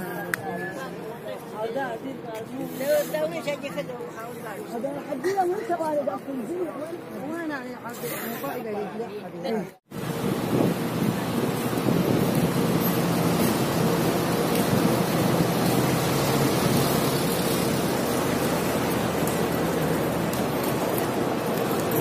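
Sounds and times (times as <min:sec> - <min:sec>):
traffic hiss: 0:02.5 - 0:03.4, 0:10.0 - 0:22.0.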